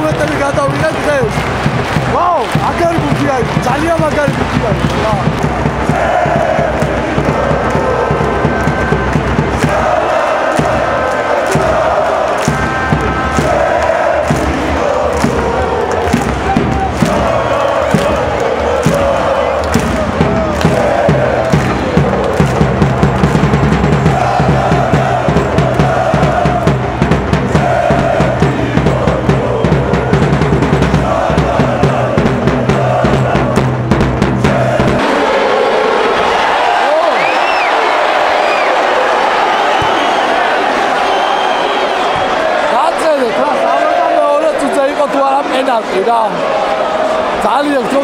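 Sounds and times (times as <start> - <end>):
bass drum beat: 0.0 - 35.2
football supporters chanting: 0.0 - 48.0
stadium crowd noise: 0.0 - 48.0.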